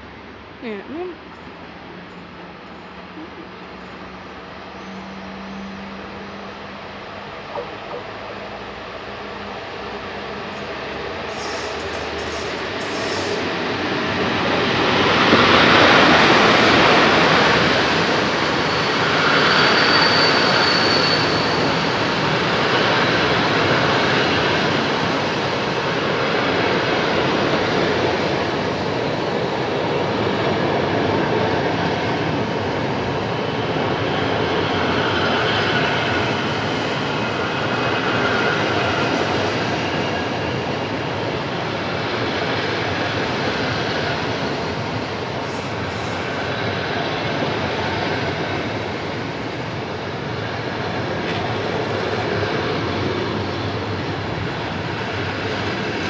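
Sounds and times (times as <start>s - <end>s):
train wheels on rails: 1.4s - 56.0s.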